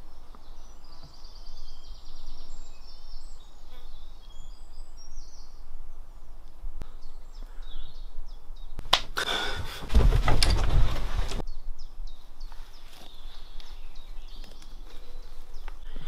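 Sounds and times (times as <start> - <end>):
outdoor background noise: 0.0 - 16.0
songbirds chirping and trilling: 0.0 - 16.0.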